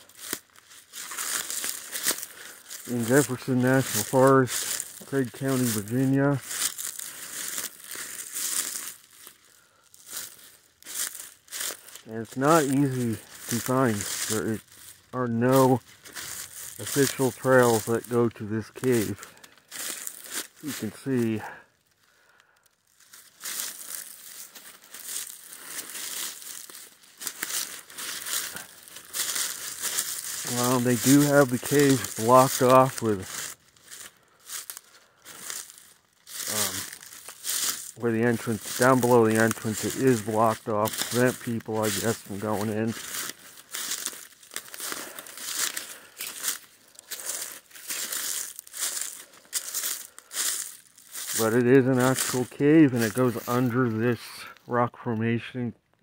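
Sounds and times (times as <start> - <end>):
footsteps through dry leaves: 0.0 - 54.6.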